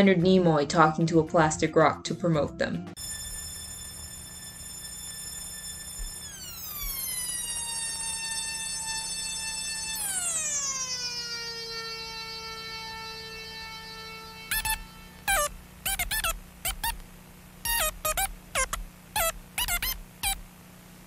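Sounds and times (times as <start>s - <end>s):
synthesizer tone gliding down: 3.0s - 17.0s.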